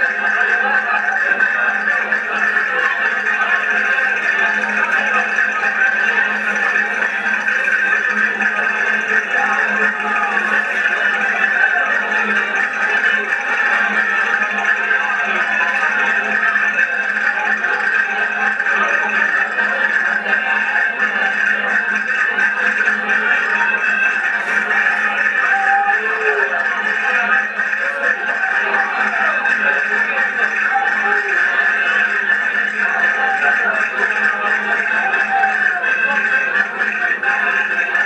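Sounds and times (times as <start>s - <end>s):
accordions playing folk dance tune: 0.0s - 38.0s.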